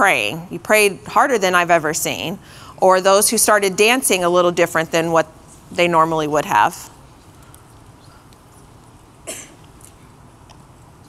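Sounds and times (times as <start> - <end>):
person coughing: 9.3 - 9.6.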